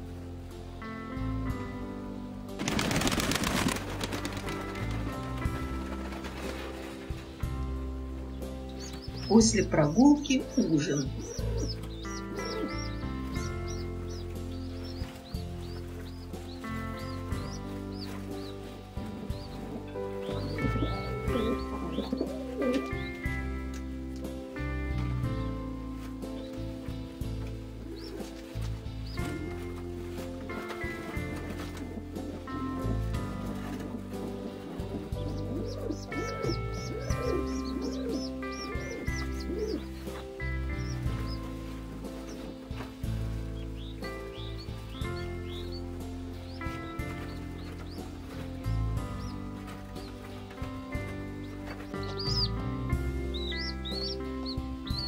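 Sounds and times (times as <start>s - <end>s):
soft background music: 0.0s - 55.0s
pigeon squabs peeping: 10.4s - 23.4s, 27.8s - 43.0s, 50.9s - 55.0s.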